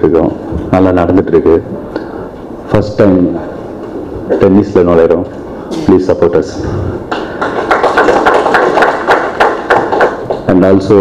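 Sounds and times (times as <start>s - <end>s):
audience applauding: 7.1s - 10.6s.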